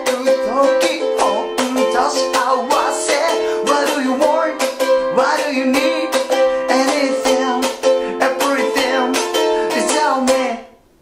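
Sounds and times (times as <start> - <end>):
man singing: 0.0 - 10.8
ukulele strumming: 0.0 - 11.0.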